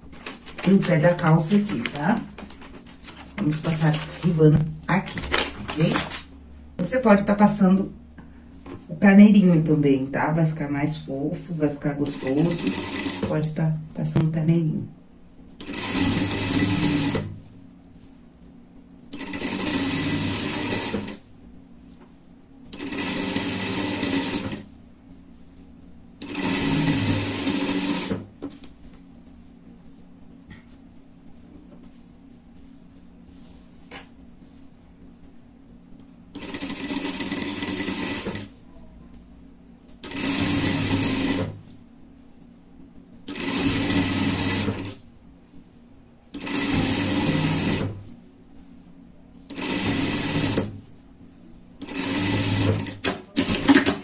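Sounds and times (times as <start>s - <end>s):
faint steady hum: 0.0s - 53.4s
sewing machine stitching: 12.1s - 13.4s, 15.6s - 17.3s, 19.1s - 21.2s, 22.7s - 24.6s, 26.2s - 28.2s, 36.4s - 38.5s, 40.0s - 41.6s, 43.3s - 45.0s, 46.4s - 48.0s, 49.5s - 50.8s, 51.8s - 54.0s.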